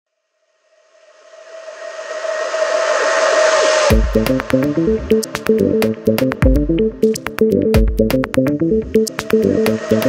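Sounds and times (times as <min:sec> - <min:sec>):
electronic music: 0:02.1 - 0:10.0.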